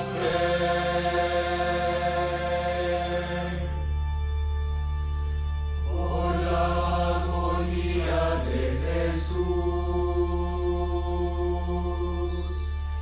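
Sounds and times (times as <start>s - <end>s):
choir singing slow chant: 0.0s - 3.9s, 5.9s - 12.8s.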